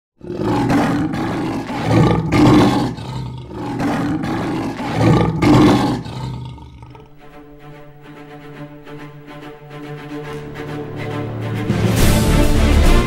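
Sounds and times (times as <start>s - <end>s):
big cat roaring: 0.2s - 7.2s
quiet music with held notes: 7.0s - 13.0s.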